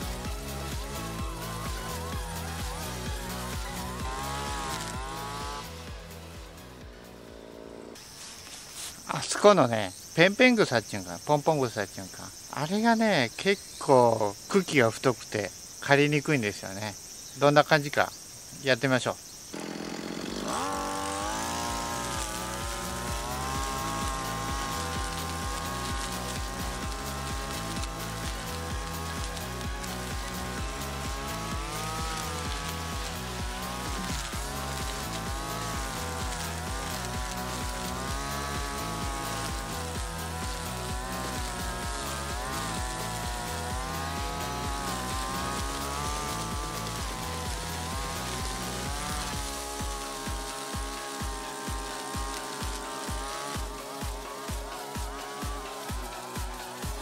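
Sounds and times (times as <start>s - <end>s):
cutting head chewing weeds: 0.0s - 6.4s, 7.9s - 9.4s, 19.6s - 57.0s
background music with steady beat: 0.0s - 8.0s, 20.4s - 57.0s
brush cutter engine running: 0.0s - 13.9s, 19.5s - 57.0s.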